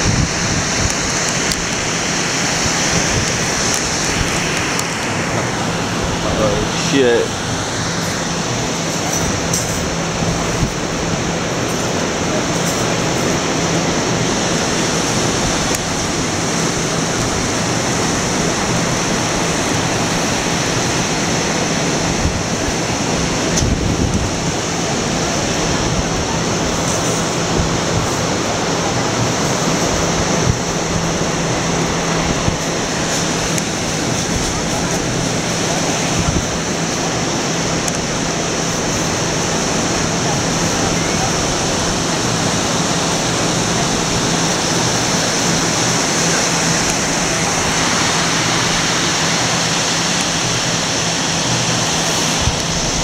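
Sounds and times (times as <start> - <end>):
ocean surf breaking on beach: 0.0 - 53.0
wind on microphone: 0.0 - 53.0.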